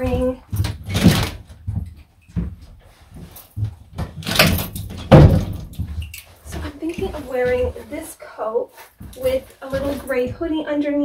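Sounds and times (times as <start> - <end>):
knocks and rustling of coat: 0.0 - 10.6.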